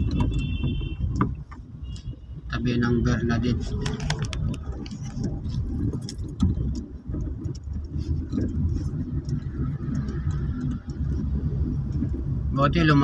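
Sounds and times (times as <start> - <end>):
car engine rumble: 0.0 - 13.0
road noise: 0.0 - 13.0.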